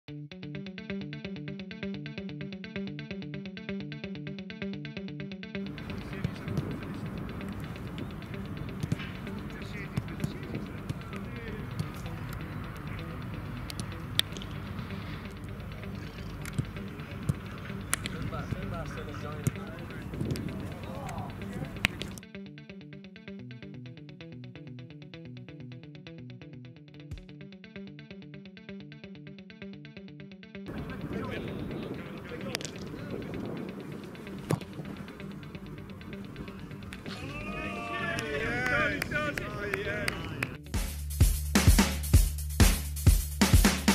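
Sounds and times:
background music: 0:00.1 - 0:43.9
hurley striking ball: 0:16.0 - 0:22.1.

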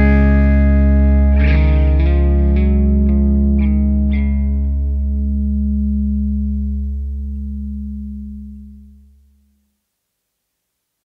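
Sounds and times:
guitar and bass chord ringing: 0:00.0 - 0:09.6.

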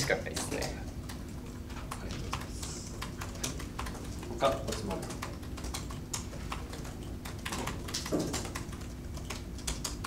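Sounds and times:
keyboard typing: 0:00.0 - 0:10.0
low room hum: 0:00.0 - 0:10.0.

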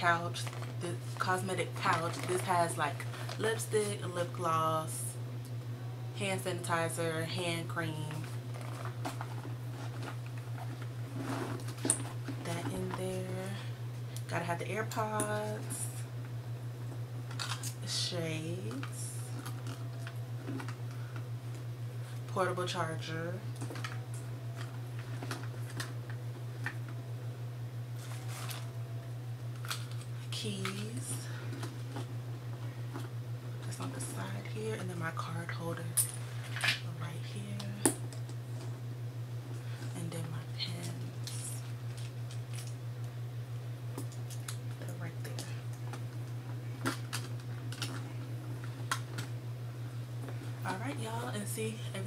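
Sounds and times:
steady low hum: 0:00.0 - 0:52.0.

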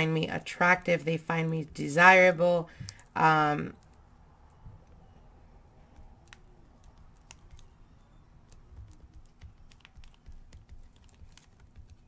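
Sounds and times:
stick scratching into wax: 0:08.5 - 0:12.0.

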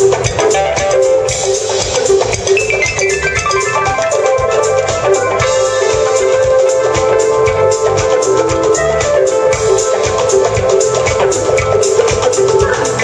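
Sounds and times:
bass guitar: 0:00.0 - 0:13.0
drum kit: 0:00.0 - 0:13.0
electric guitar: 0:00.0 - 0:13.0
keyboard: 0:00.0 - 0:13.0
percussion struck with sticks: 0:00.0 - 0:13.0.

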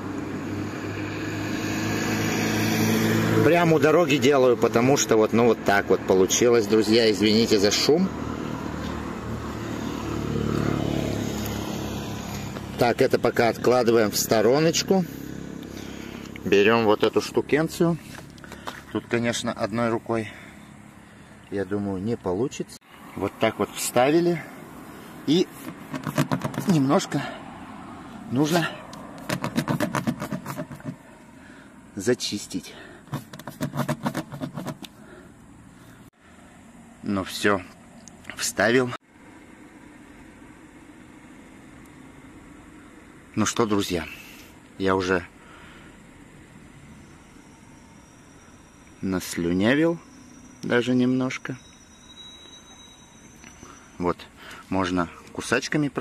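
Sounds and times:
vehicle passing: 0:00.0 - 0:33.0, 0:38.7 - 0:51.6
reamer rasping in tyre: 0:00.2 - 0:18.9, 0:22.9 - 0:31.7, 0:32.7 - 0:36.1.

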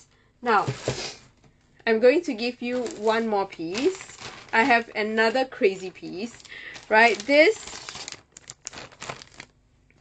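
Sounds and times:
packaging rustling: 0:02.6 - 0:09.6.

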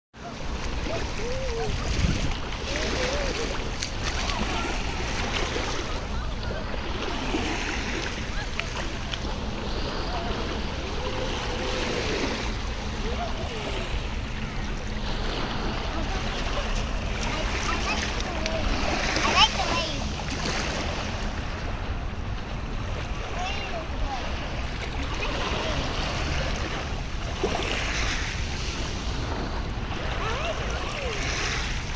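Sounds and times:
small waves washing over sand: 0:00.2 - 0:31.9
wind rumble on microphone: 0:00.3 - 0:17.2.

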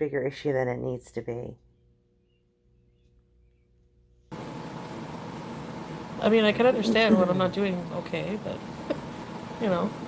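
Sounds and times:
faint hum: 0:00.7 - 0:10.0
microphone background hiss: 0:04.4 - 0:10.0.

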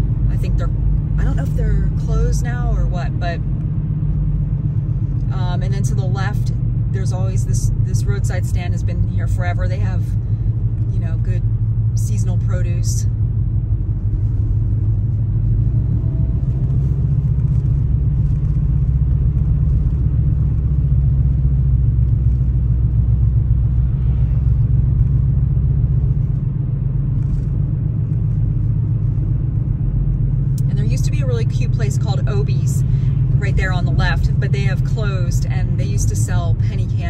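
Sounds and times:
car engine and tyres rumbling: 0:00.0 - 0:37.0.

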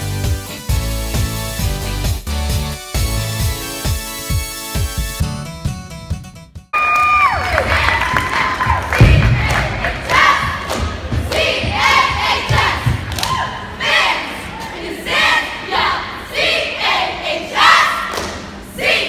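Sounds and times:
crowd cheering: 0:06.7 - 0:11.1
cheer squad shouting a chant: 0:06.9 - 0:19.0
heavy stomping thuds: 0:08.2 - 0:13.4.

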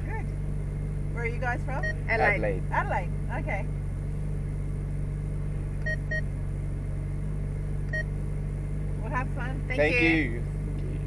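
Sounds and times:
car engine idling: 0:00.0 - 0:11.0
short electronic beeps: 0:01.8 - 0:02.1, 0:05.8 - 0:06.2.

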